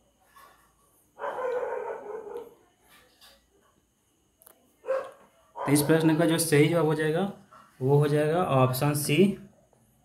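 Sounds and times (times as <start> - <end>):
dog barking: 1.2 - 2.6, 4.8 - 6.0.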